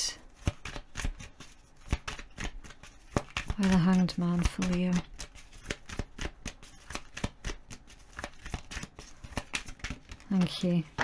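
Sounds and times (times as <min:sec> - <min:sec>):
cards being shuffled: 0:00.3 - 0:11.0.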